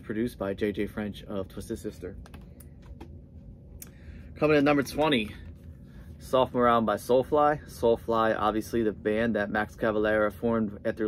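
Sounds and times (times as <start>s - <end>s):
low steady hum: 0.0s - 11.0s
cd cases clicking and tapping: 2.2s - 3.1s.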